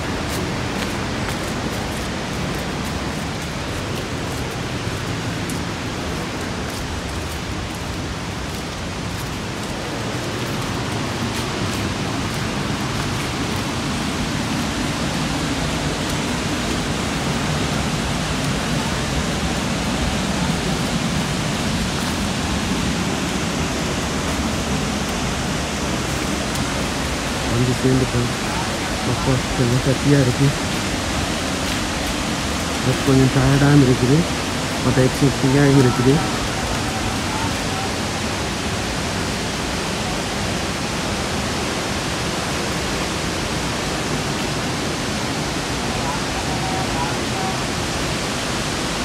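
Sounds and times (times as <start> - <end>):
waterfall rushing: 0.0 - 49.0.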